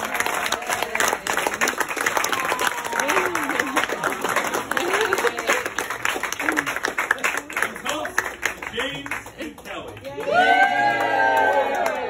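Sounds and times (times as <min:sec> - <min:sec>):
people applauding: 0:00.0 - 0:12.0.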